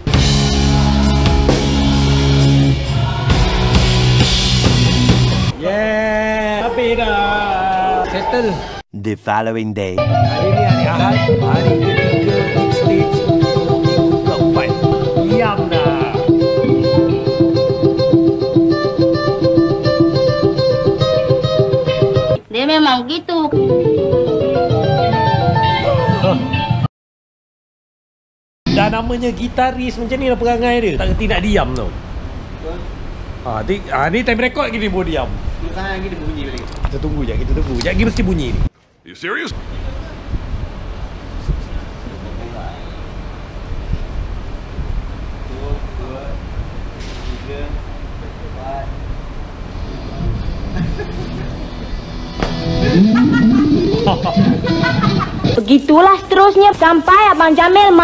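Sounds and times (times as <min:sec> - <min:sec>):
electric guitar single-note run: 0:10.0 - 0:22.4, 0:23.5 - 0:25.7, 0:49.5 - 0:55.6.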